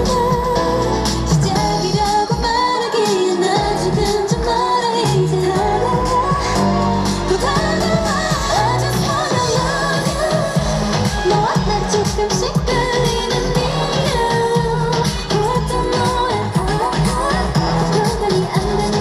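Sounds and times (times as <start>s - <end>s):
steady bass beat: 0.0s - 2.6s, 3.6s - 19.0s
dance-pop song over sound system: 0.0s - 19.0s
woman singing into microphone: 0.0s - 19.0s.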